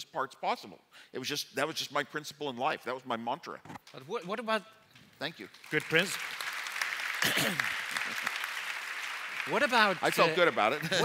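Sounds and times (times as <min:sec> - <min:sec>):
audience applauding: 0:05.4 - 0:11.0
throat clearing: 0:07.2 - 0:07.7.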